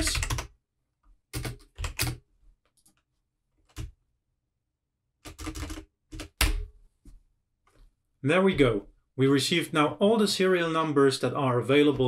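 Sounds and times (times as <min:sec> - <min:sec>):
computer keyboard typing: 0:00.0 - 0:00.5, 0:01.3 - 0:02.2, 0:05.2 - 0:06.7.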